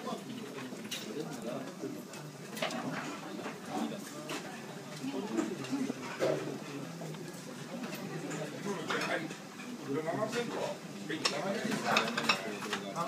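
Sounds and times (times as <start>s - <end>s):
hubbub of many voices: 0.0s - 13.0s.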